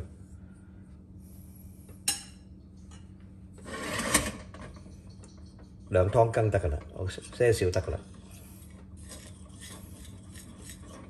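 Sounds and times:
ladle scraping metal: 3.6s - 5.2s.

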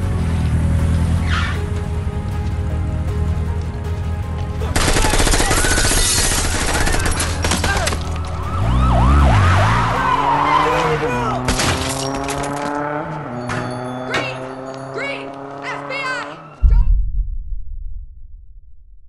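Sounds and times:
dramatic backing music: 0.0s - 10.1s
automatic gunfire: 4.8s - 8.0s
police siren whooping: 7.9s - 11.5s.

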